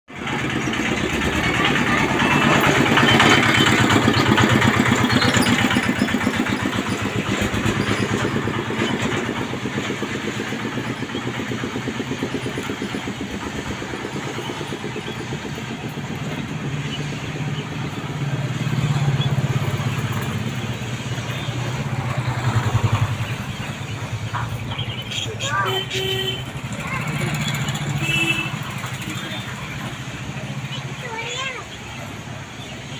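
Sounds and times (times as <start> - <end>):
engine running with rapid throb: 0.1 - 32.9.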